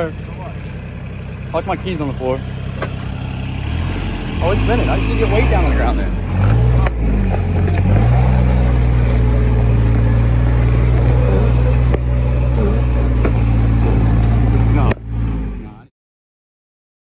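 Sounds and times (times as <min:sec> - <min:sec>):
wheels spinning: 0:00.0 - 0:15.8
diesel engine running loud: 0:00.0 - 0:15.9.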